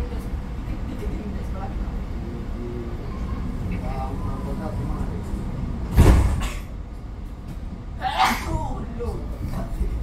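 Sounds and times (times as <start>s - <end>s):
person sneezing: 8.0s - 8.6s.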